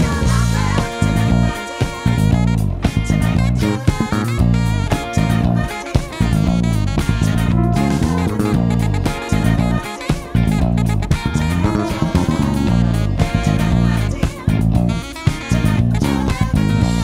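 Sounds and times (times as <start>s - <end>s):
backing track with drums: 0.0s - 17.0s
funk bass line fingerstyle: 0.0s - 17.0s.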